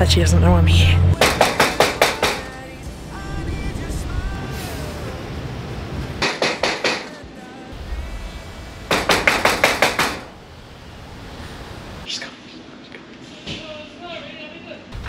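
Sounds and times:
knocking on metal-mesh door: 1.2 - 2.4.

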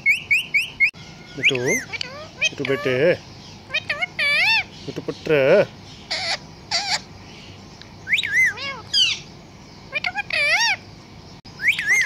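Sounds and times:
parrot squawking: 0.0 - 4.8, 6.1 - 7.1, 8.1 - 9.3, 9.9 - 10.8, 11.6 - 12.0
parrot mimicking words: 1.4 - 3.0, 3.7 - 4.7, 8.4 - 8.9, 9.9 - 10.8.

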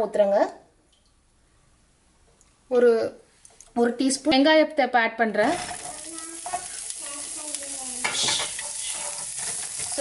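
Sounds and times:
onions sizzling in oil: 5.4 - 10.0
wooden spatula stirring: 5.5 - 10.0.

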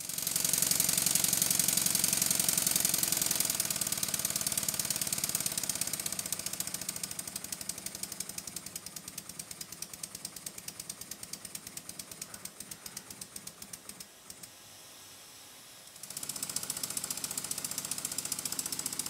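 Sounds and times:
model steam engine exhaust beats: 0.0 - 19.0.

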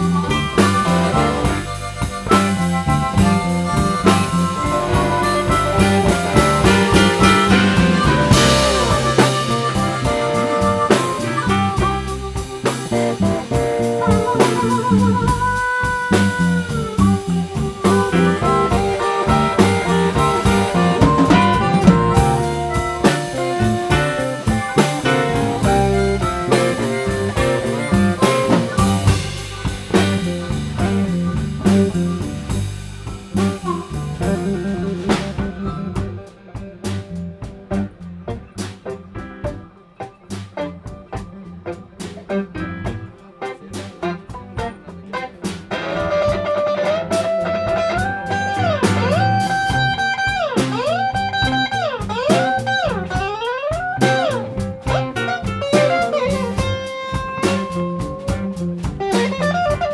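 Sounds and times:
amplified blues harmonica: 0.0 - 59.9
live blues band playing: 0.0 - 59.9.

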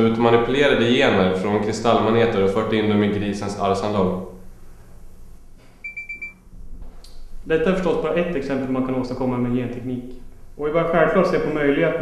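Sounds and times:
short high-pitched electronic beeps: 5.8 - 6.4.

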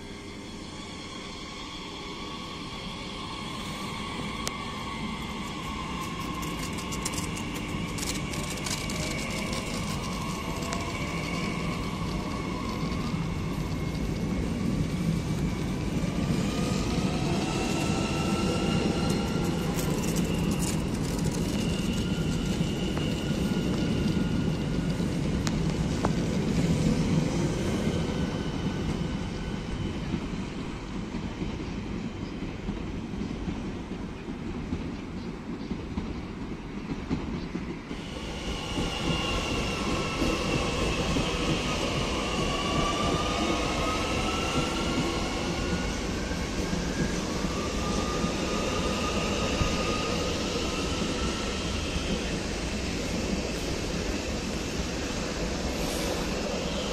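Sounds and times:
train wheels rumbling on rail: 0.0 - 56.9.

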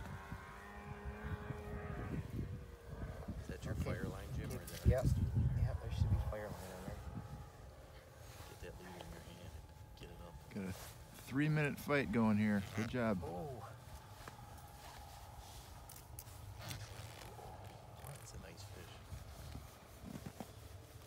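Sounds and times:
wind rumble on microphone: 0.0 - 12.6, 13.2 - 21.0
steady droning tone: 0.0 - 21.0.

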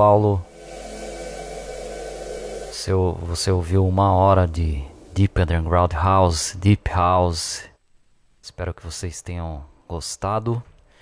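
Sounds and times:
low rushing noise with hum: 0.0 - 7.6.

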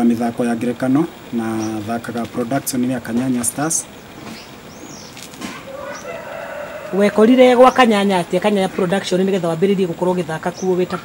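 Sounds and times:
rooster crowing: 5.4 - 9.1.

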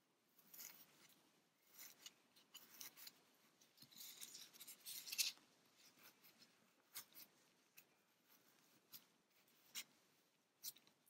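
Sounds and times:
stuffing rustling and scratching: 0.3 - 11.0.

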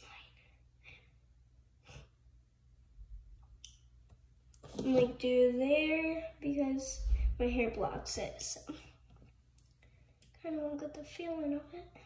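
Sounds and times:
girl speaking: 4.8 - 8.9, 10.4 - 12.0.

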